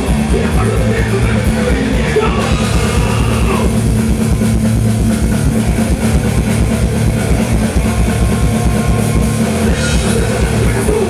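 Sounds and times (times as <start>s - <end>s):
rock band playing live: 0.0s - 11.0s
steady drum beat: 0.0s - 11.0s.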